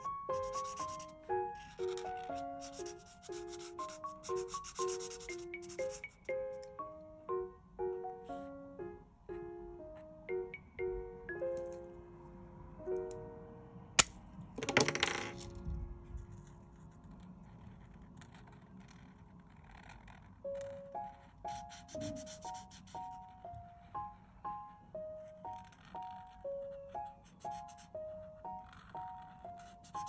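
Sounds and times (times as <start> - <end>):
marker scratching on paper: 0.0 - 6.2, 16.4 - 24.1, 25.3 - 30.0
gentle instrumental music: 0.0 - 14.5, 20.4 - 30.0.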